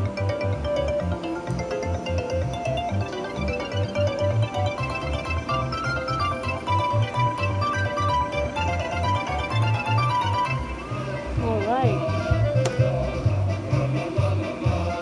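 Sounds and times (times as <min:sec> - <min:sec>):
slot machine win music: 0:00.0 - 0:12.6.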